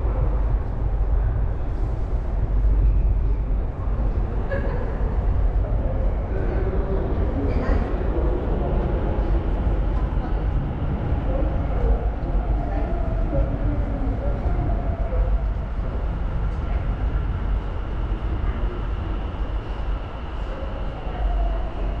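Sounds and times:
subway train rumbling: 0.0 - 22.0.

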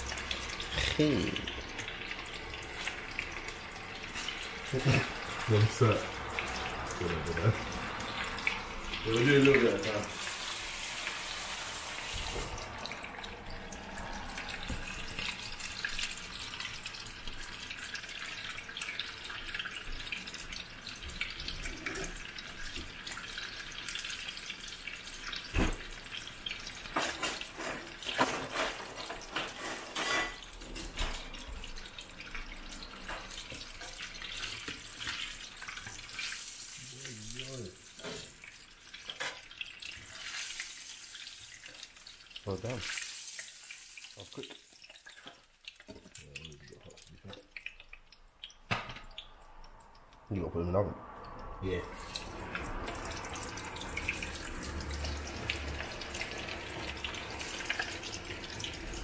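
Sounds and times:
food deep-frying in oil: 0.0 - 59.0.

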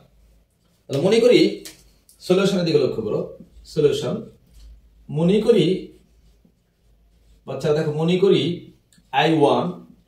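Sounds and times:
marker writing on whiteboard: 0.4 - 9.4
man speaking: 5.1 - 6.0, 7.5 - 9.9.

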